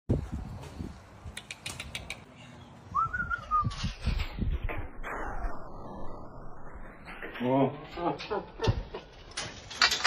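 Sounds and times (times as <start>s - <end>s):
high whistle-like tone: 2.9s - 4.1s
metal fence rattling: 7.1s - 10.0s.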